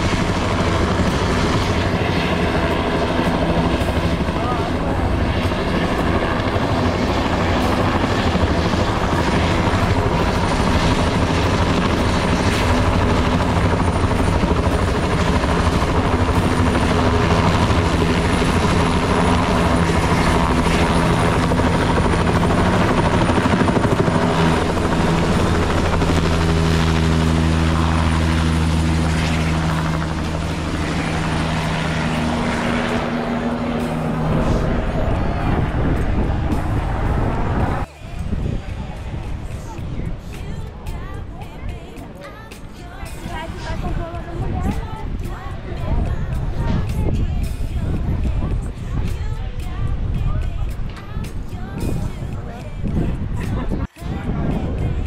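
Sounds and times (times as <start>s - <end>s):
helicopter rotor and turbine: 0.0s - 55.0s.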